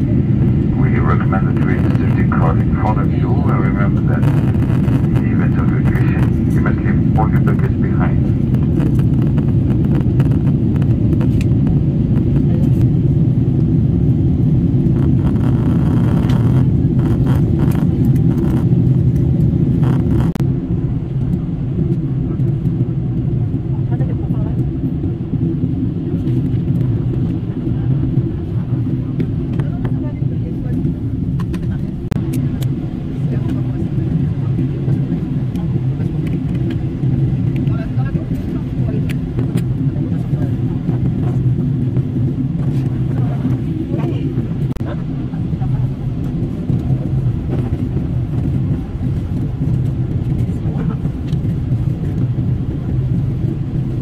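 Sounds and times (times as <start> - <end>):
jet engine rumble in cabin: 0.0 - 54.0.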